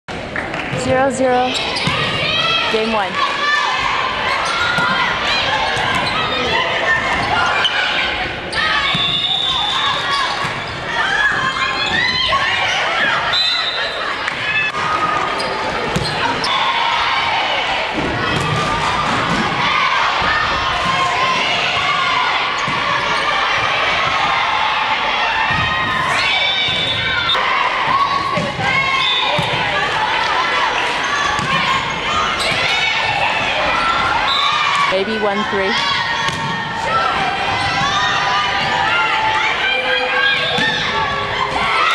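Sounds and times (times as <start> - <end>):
voices of players and onlookers: 0.1 - 41.9
volleyball thuds and bounces: 28.3 - 29.7, 31.3 - 31.8, 36.2 - 37.9.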